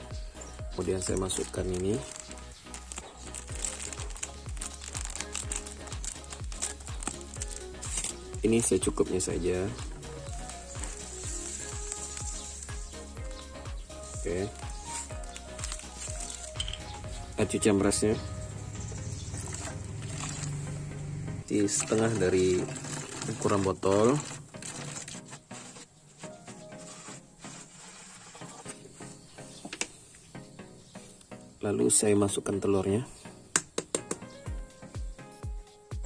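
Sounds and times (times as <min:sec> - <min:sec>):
background music with low beat: 0:00.0 - 0:36.0
scissors snipping plastic: 0:01.0 - 0:08.2
plastic sachet crinkling: 0:01.0 - 0:17.1, 0:19.4 - 0:20.6, 0:21.7 - 0:28.4
water poured into plastic bottle: 0:01.1 - 0:08.1, 0:19.3 - 0:20.6, 0:21.7 - 0:25.8.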